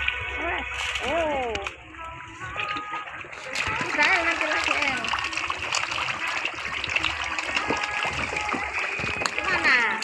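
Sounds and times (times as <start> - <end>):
fish splashing in water: 2.5 - 10.0.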